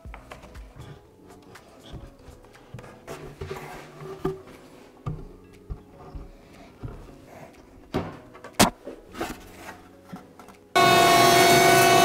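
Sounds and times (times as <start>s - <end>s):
wood scraping and shuffling: 0.0s - 10.7s.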